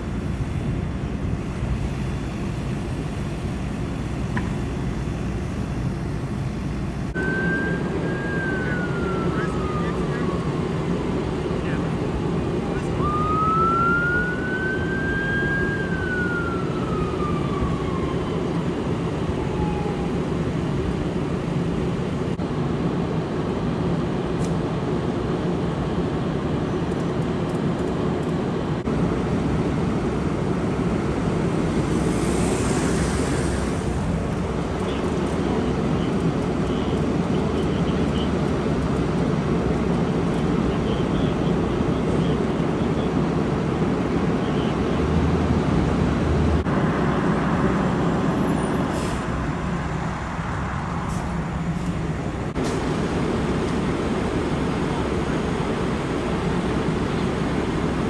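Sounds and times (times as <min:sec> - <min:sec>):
idling vehicle engines rumble: 0:00.0 - 0:58.0
emergency siren wailing: 0:07.2 - 0:21.8.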